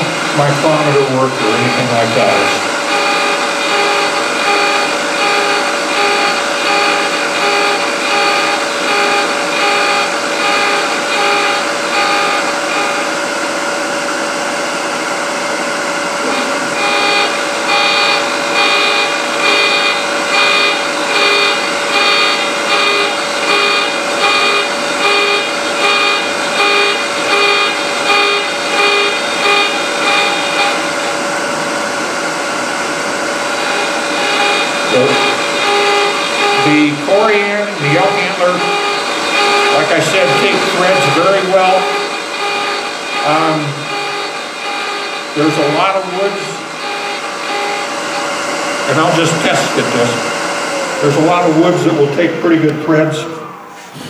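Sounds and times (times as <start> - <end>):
rotary cutter whining and pulsing: 0.0 - 54.0.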